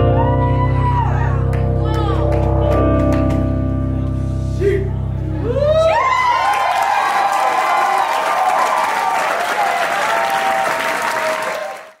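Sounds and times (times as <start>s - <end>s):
audience applauding and cheering: 5.4s - 12.0s.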